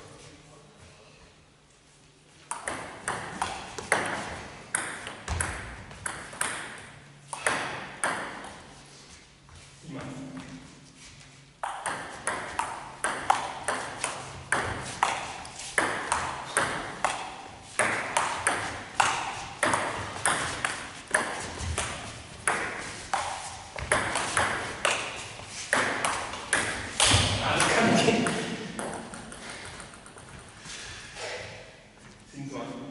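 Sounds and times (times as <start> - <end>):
ball bouncing on table: 2.5 - 6.8, 11.6 - 15.2, 15.8 - 25.1, 25.7 - 30.5
table tennis ball strikes: 2.5 - 8.6, 11.6 - 30.5.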